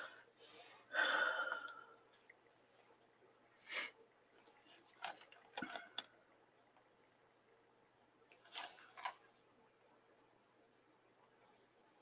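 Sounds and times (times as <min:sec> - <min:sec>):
faint clicks and rustles: 0:04.3 - 0:06.9, 0:08.2 - 0:09.6.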